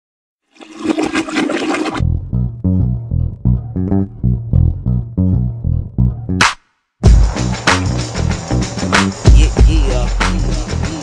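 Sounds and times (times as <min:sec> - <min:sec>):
toilet flushing: 0:00.5 - 0:02.0
song bass line: 0:02.0 - 0:11.0.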